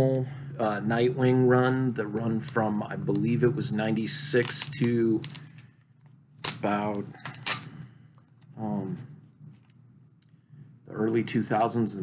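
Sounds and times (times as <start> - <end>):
man speaking: 0.0 - 5.3, 6.5 - 7.3, 8.5 - 9.2, 10.9 - 12.0.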